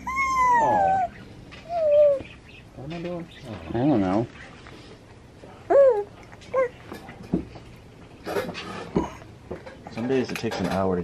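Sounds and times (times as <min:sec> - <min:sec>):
baby squealing: 0:00.0 - 0:02.2.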